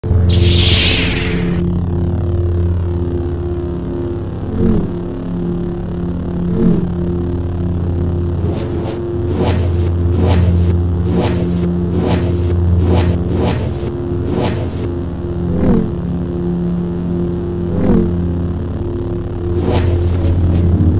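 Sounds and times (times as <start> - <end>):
lightsaber swing whooshes: 0.0 - 1.7, 8.4 - 14.9, 19.5 - 20.9
lightsaber hum: 0.0 - 20.9.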